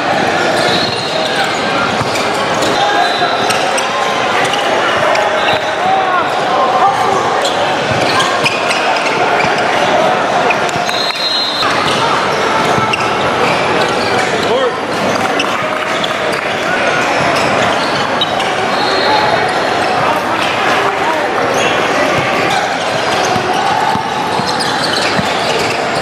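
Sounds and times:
chatter of people: 0:00.0 - 0:26.0.

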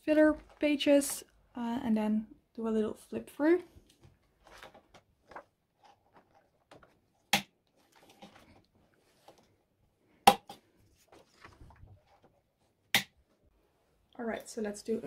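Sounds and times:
rustling plastic pages and paper: 0:03.8 - 0:09.6, 0:10.9 - 0:12.4.

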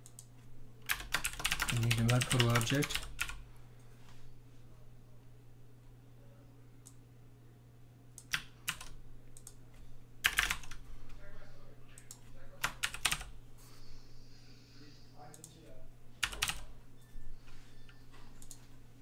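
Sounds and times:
typing on a keyboard: 0:00.9 - 0:03.4, 0:08.2 - 0:09.6, 0:10.2 - 0:10.8, 0:12.0 - 0:13.3, 0:16.2 - 0:16.7.

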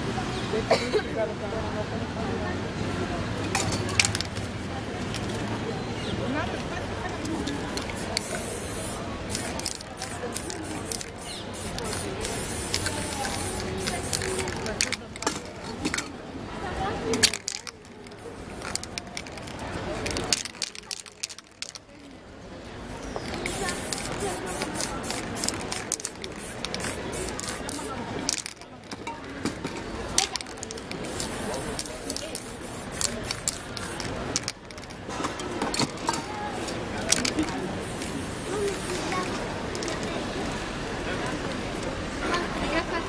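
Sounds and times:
spray paint can hissing: 0:07.2 - 0:15.4, 0:17.1 - 0:21.8, 0:23.1 - 0:29.0, 0:30.2 - 0:34.9, 0:35.8 - 0:40.1.

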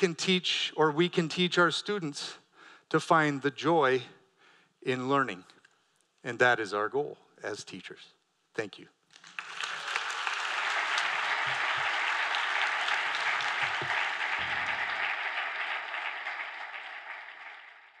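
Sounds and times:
large audience applauding: 0:09.1 - 0:18.0.

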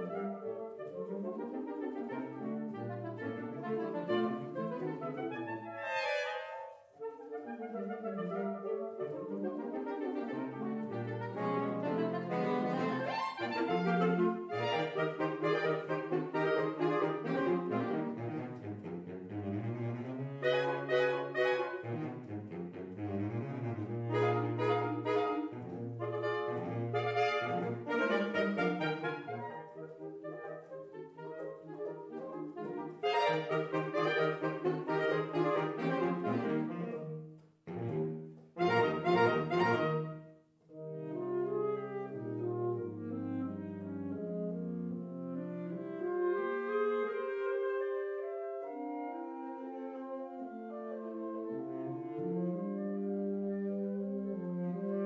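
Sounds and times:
saxophone quartet playing: 0:00.0 - 0:55.0.

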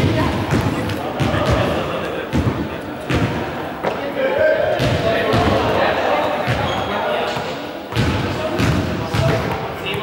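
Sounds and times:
ball bouncing on court: 0:00.0 - 0:04.0, 0:04.8 - 0:05.6, 0:06.4 - 0:10.0
voices talking in echoing hall: 0:00.0 - 0:10.0.

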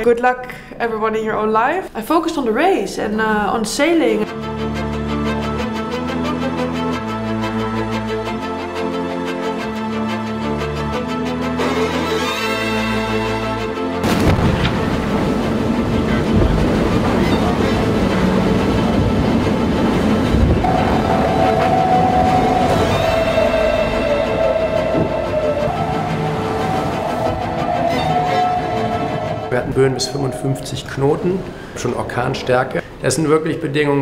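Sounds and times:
music: 0:02.2 - 0:34.0
rushing wind and water: 0:12.6 - 0:32.6
steady high tone: 0:20.6 - 0:32.4.

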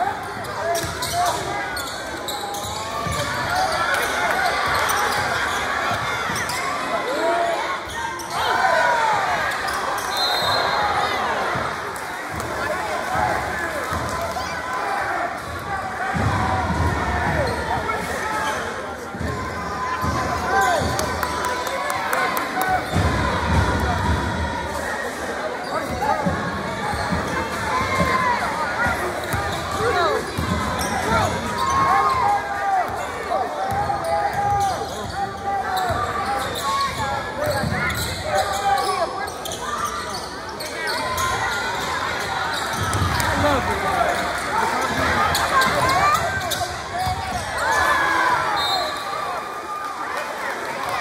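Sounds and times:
crowd voices and shouts: 0:00.0 - 0:51.0.

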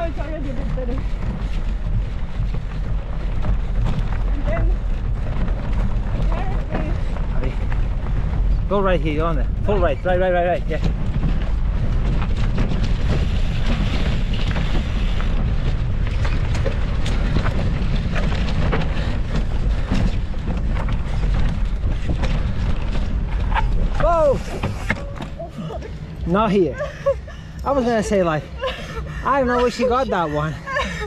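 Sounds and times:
bike rattling and knocking: 0:00.0 - 0:31.0
tyres rolling on rocky ground: 0:00.0 - 0:31.0
wind buffeting microphone: 0:00.0 - 0:31.0.

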